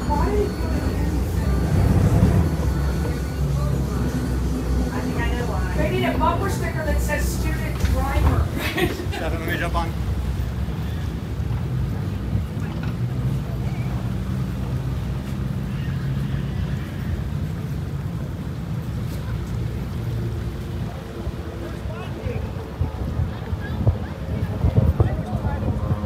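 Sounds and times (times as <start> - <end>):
boat engine humming: 0.0 - 26.0.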